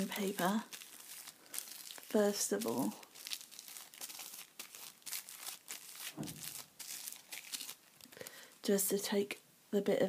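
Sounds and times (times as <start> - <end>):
blotting paper crinkling: 0.0 - 8.4.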